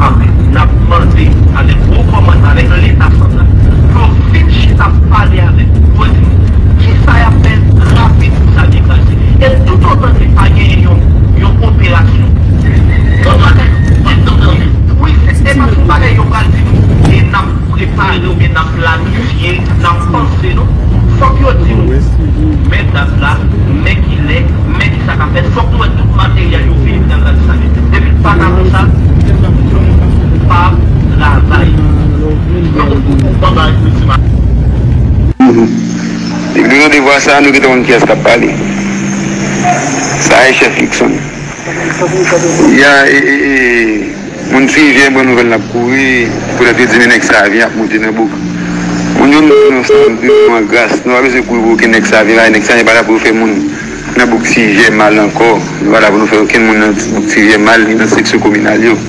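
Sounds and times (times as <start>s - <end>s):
voices talking: 0.0s - 34.3s, 35.3s - 59.0s
loud steady low rumble: 0.0s - 59.0s.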